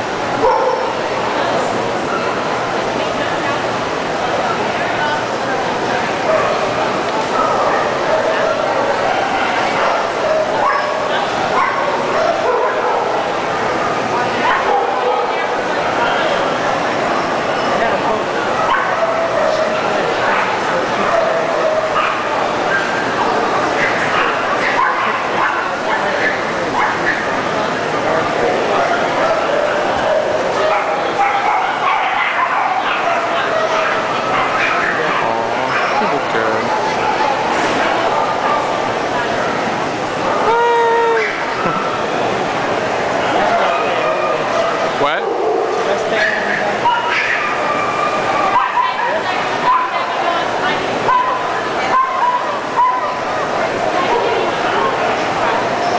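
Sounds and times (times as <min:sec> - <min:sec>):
crowd chatter: 0:00.0 - 0:55.9
dogs barking: 0:00.4 - 0:01.0, 0:07.3 - 0:15.7, 0:18.5 - 0:27.4, 0:29.0 - 0:38.9, 0:43.4 - 0:50.4, 0:51.1 - 0:55.1.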